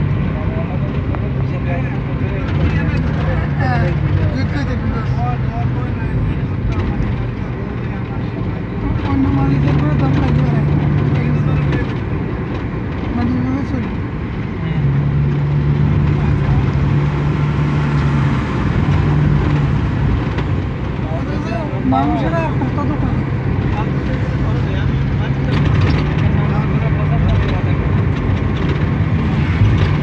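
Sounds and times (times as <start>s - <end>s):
low engine drone: 0.0s - 30.0s
road noise rumble: 0.0s - 30.0s.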